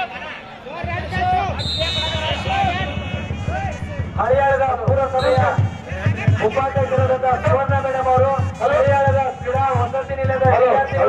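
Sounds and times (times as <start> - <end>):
man speaking over loudspeaker: 0.0 - 11.0
rapid drumming with low thumps: 0.8 - 11.0.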